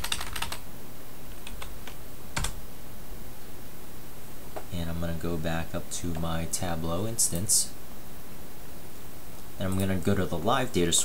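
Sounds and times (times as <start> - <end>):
computer keyboard typing: 0.0 - 0.6, 1.3 - 2.6.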